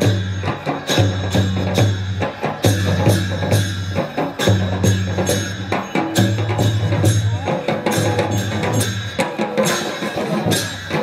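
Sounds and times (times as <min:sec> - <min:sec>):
hand cymbals clashing: 0:00.0 - 0:11.0.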